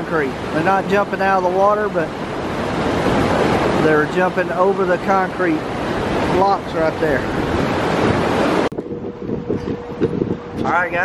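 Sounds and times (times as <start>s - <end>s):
water rushing over weirs: 0.0s - 11.0s
wind noise on microphone: 0.0s - 11.0s.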